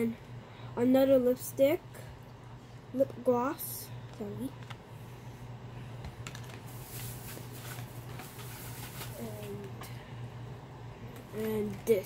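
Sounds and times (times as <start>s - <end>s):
steady low hum: 0.0s - 12.0s
light clicks and taps of packages: 6.0s - 9.9s.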